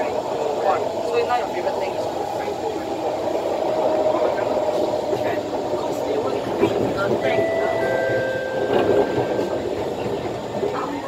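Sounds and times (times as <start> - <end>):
train rumbling from inside carriage: 0.0 - 11.0.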